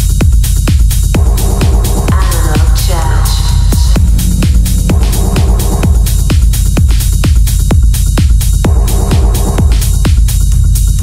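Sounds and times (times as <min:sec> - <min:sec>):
deep kick drum: 0:00.0 - 0:11.0
hi-hats: 0:00.0 - 0:11.0
throbbing bass: 0:00.0 - 0:11.0
falling synth sweep: 0:03.9 - 0:06.8.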